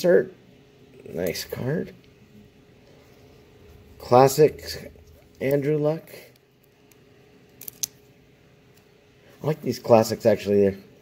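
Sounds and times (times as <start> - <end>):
faint steady hum: 0.0 - 11.0
trading cards clicking: 6.7 - 8.0.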